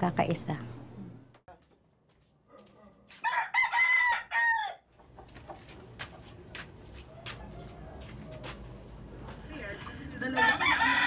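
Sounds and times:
rooster crowing: 3.2 - 4.9, 7.1 - 8.5, 10.2 - 11.0.

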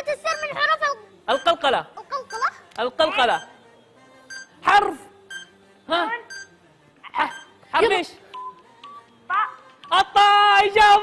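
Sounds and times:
countdown music beeping tones: 0.0 - 3.6, 4.2 - 5.6, 6.2 - 6.5, 7.2 - 7.6, 8.3 - 9.1.

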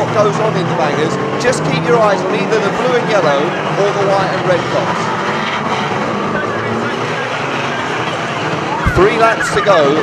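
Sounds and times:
racing car engines revving: 0.0 - 10.0.

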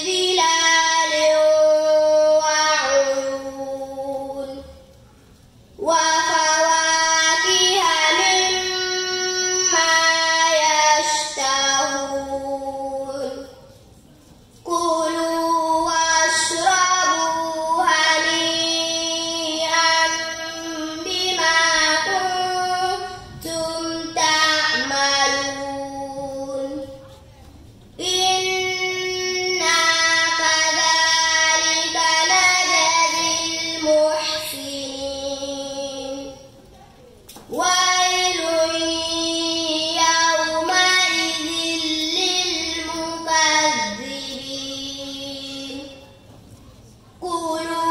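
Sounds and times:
girl chanting recitation: 0.0 - 13.9, 14.6 - 47.9.

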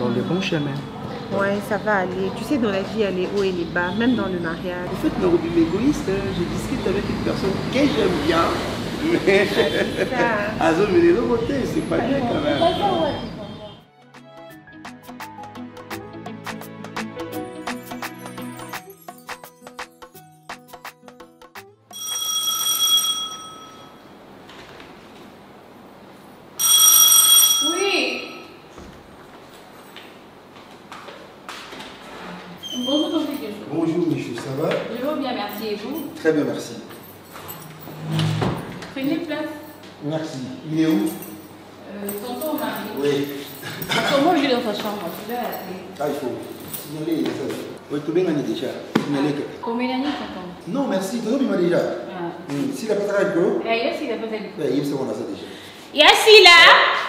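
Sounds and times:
spoken dialogue: 0.0 - 13.6, 39.0 - 57.0
electronic doorbell chime: 22.0 - 24.2, 26.6 - 28.5.

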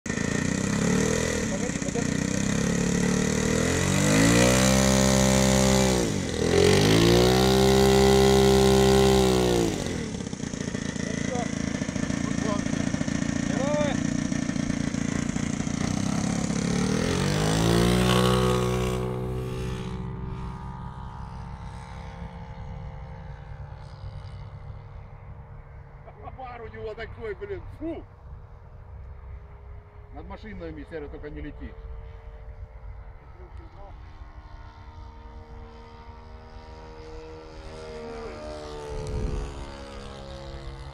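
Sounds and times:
model plane engine revving: 0.1 - 25.0, 33.2 - 40.9.

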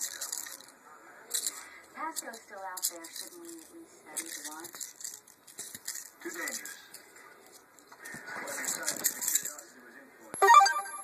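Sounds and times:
short electronic beeping notes: 10.4 - 11.0.

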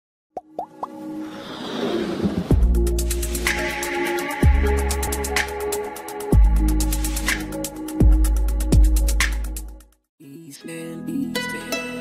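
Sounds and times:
whoosh: 1.2 - 3.7.

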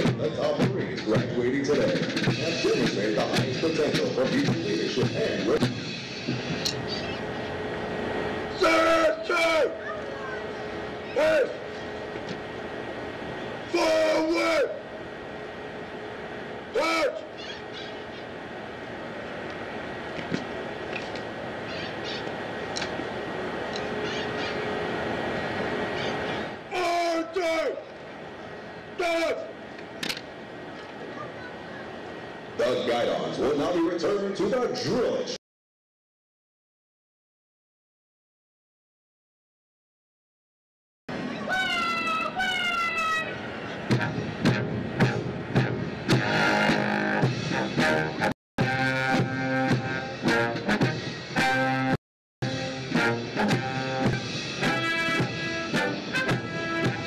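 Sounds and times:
outdoor background noise: 0.0 - 35.4, 41.1 - 57.0
person shouting commands: 8.5 - 10.5, 11.1 - 11.6, 13.7 - 14.9, 16.7 - 17.4, 26.7 - 27.9, 29.0 - 29.6, 41.3 - 43.4.

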